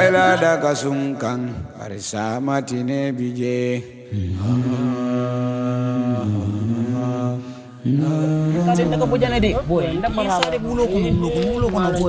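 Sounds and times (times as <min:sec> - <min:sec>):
man chanting long notes: 0:00.0 - 0:01.4
person speaking: 0:00.0 - 0:01.7, 0:08.6 - 0:12.0.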